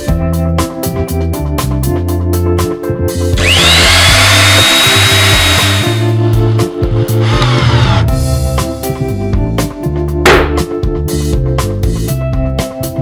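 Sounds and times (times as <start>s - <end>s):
background music with bass line: 0.0s - 13.0s
power drill whine: 3.4s - 6.2s, 7.2s - 8.0s.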